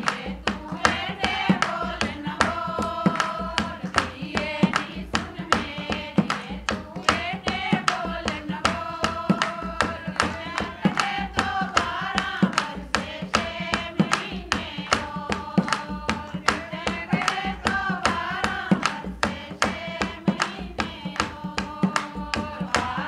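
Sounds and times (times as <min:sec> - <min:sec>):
hand drum playing: 0:00.0 - 0:23.0
rhythmic hand-clapping: 0:00.0 - 0:23.0
women singing folk song: 0:00.0 - 0:23.0.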